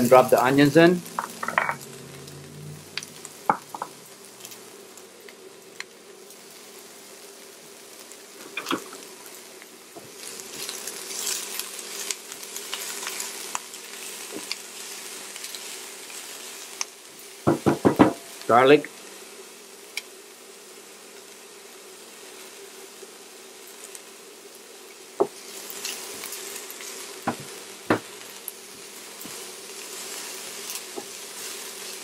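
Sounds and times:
onions sizzling in oil: 0:00.0 - 0:32.0.

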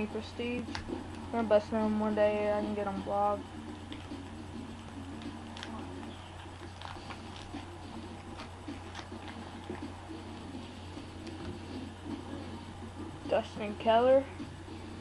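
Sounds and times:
low electrical hum: 0:00.0 - 0:15.0
card pack rustling: 0:05.2 - 0:09.8.

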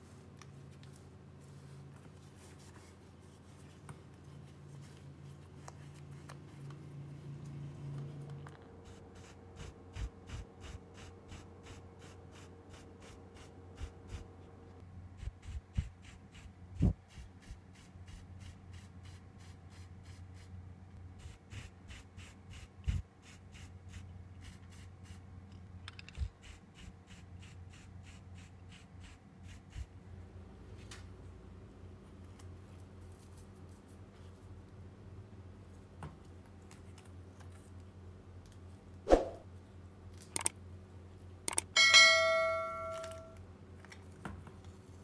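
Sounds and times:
bright bell ding: 0:41.8 - 0:43.4.

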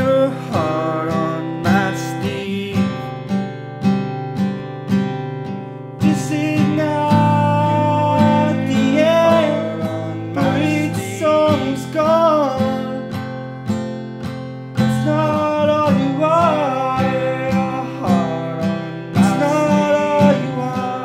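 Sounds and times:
man singing: 0:00.0 - 0:03.3, 0:06.0 - 0:13.4, 0:14.8 - 0:21.0
acoustic guitar strumming: 0:00.0 - 0:21.0.

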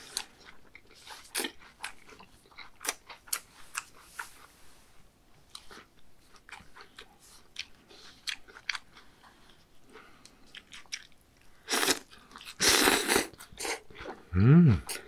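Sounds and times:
wet chewing: 0:00.0 - 0:04.5, 0:05.5 - 0:14.3
slurping noodles: 0:11.7 - 0:14.2.

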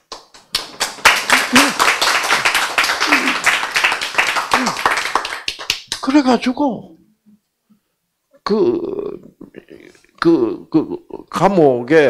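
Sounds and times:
audience clapping: 0:00.0 - 0:06.3
person speaking: 0:01.3 - 0:01.9, 0:06.0 - 0:07.2, 0:08.3 - 0:12.0.

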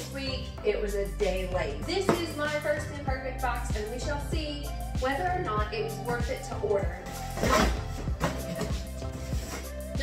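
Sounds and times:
background music: 0:00.0 - 0:10.0
cardboard flaps rustling and knocking: 0:07.4 - 0:09.7.

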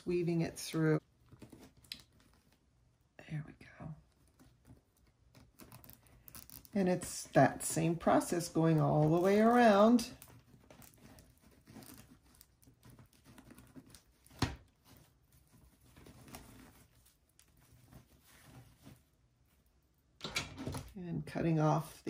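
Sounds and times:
ribbon rustling and crinkling: 0:00.0 - 0:03.0, 0:04.0 - 0:20.2.

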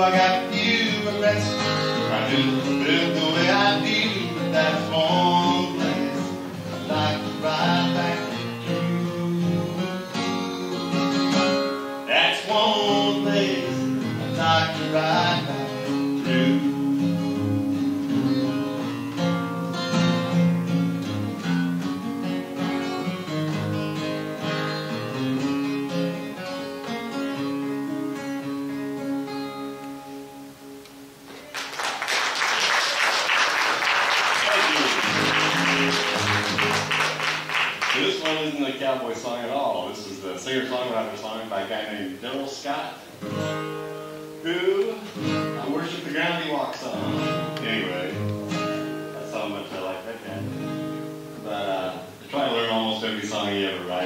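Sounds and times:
acoustic guitar picked and strummed: 0:00.0 - 0:31.5, 0:34.4 - 0:54.0
audience applauding: 0:31.3 - 0:38.6.

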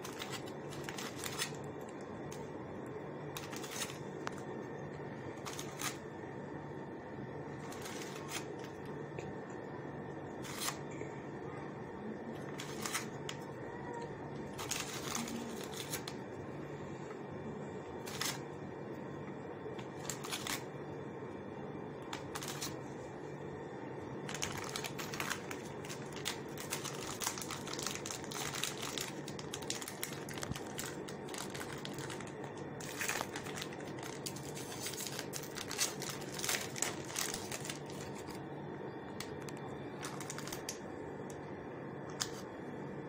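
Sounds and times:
clicks and crinkles of handling: 0:00.0 - 0:02.5, 0:03.3 - 0:06.0, 0:07.5 - 0:09.6, 0:12.2 - 0:16.2, 0:19.7 - 0:20.6, 0:22.0 - 0:22.8, 0:24.2 - 0:38.4, 0:39.0 - 0:41.4, 0:42.1 - 0:42.5
steady low hum: 0:00.0 - 0:43.0.

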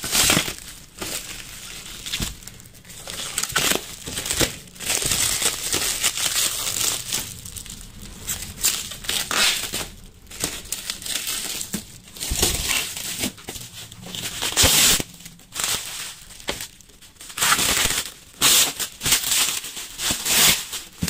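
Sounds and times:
plastic film crinkling: 0:00.0 - 0:21.0.

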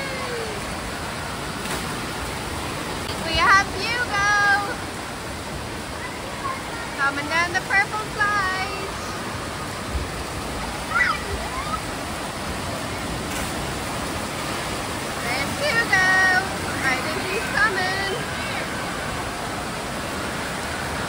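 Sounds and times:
children calling out: 0:00.0 - 0:00.7, 0:10.8 - 0:11.9
water rushing and splashing: 0:00.0 - 0:21.0.

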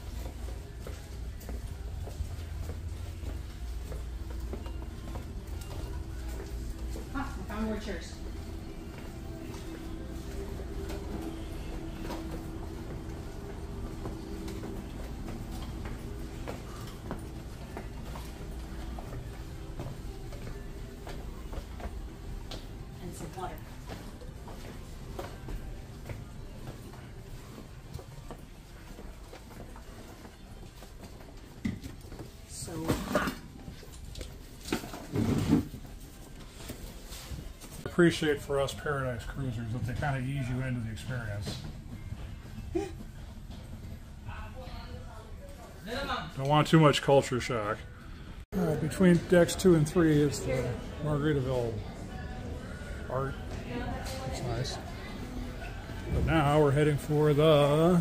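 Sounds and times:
steady low hum: 0:00.0 - 0:45.8.

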